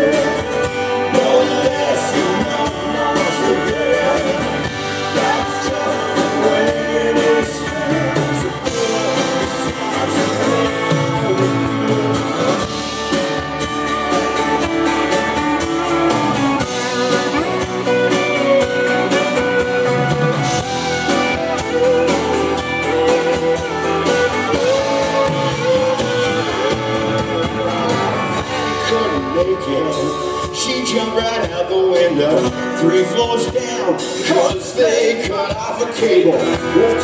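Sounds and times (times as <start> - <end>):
drums beating: 0.0 - 37.0
keyboards: 0.0 - 37.0
lead guitar: 0.0 - 37.0.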